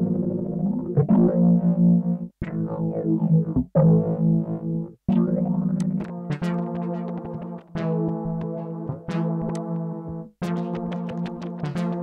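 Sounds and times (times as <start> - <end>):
effected music loop: 0.0 - 12.0.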